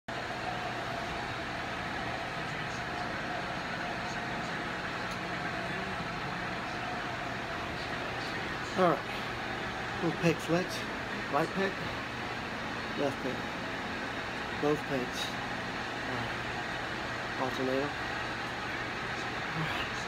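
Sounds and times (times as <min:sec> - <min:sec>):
electric fan whirring: 0:00.1 - 0:20.0
faint constant hum: 0:00.1 - 0:20.0.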